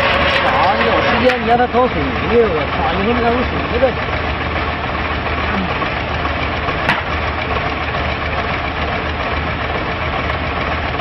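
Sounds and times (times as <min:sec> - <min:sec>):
diesel engine of concrete pump: 0:00.0 - 0:11.0
drum concrete mixer: 0:00.0 - 0:11.0.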